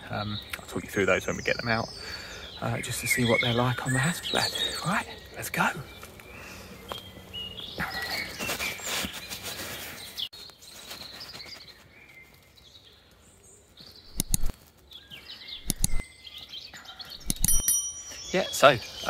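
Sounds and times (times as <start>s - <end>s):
birds chirping and singing: 0.0s - 19.0s
camera handling rustling: 15.6s - 16.0s.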